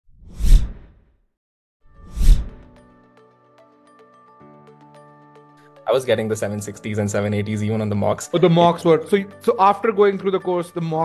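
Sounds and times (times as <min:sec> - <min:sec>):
whoosh: 0:00.1 - 0:01.0, 0:02.0 - 0:02.6.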